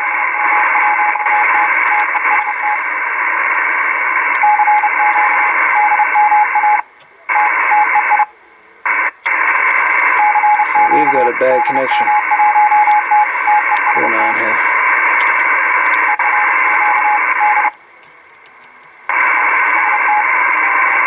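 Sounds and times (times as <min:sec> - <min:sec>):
radio receiver hiss: 0:00.0 - 0:21.0.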